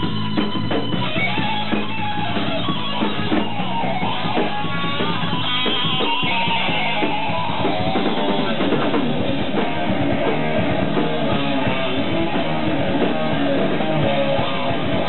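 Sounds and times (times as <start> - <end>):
heavy metal band playing live: 0.0 - 15.0.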